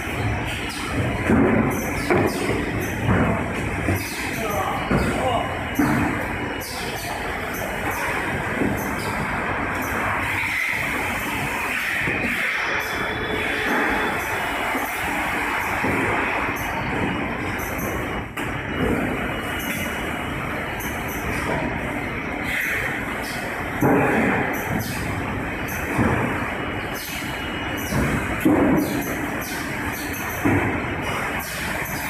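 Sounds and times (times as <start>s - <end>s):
conveyor and packing machinery rumble: 0.0s - 32.0s.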